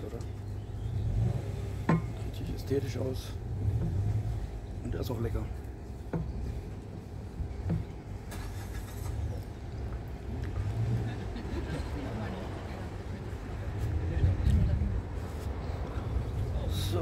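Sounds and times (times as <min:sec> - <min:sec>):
low rumble of road traffic: 0:00.0 - 0:17.0.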